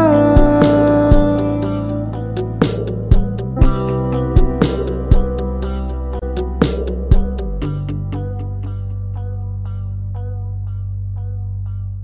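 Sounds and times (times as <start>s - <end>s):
guitars: 0.0s - 12.0s
steady drum beat: 0.4s - 1.5s, 2.6s - 5.5s, 6.4s - 8.0s.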